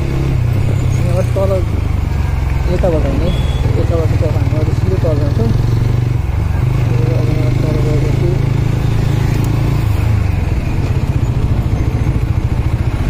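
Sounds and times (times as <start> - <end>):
motorcycle engine slowing: 0.0 - 13.0.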